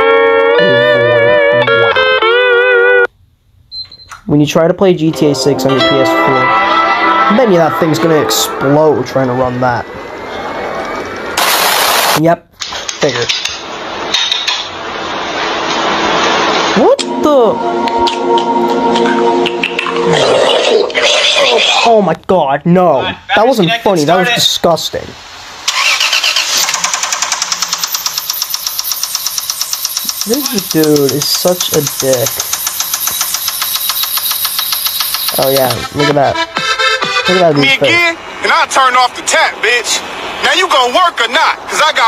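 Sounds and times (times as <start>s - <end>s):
steady hiss: 23.5s - 26.4s, 28.3s - 35.6s.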